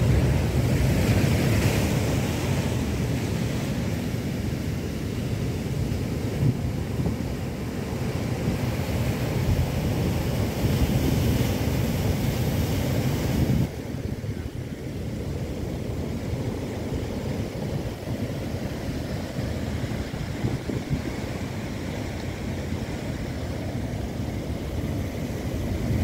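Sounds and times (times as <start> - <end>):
heavy surf breaking: 0.0 - 26.0
wind buffeting microphone: 6.0 - 26.0.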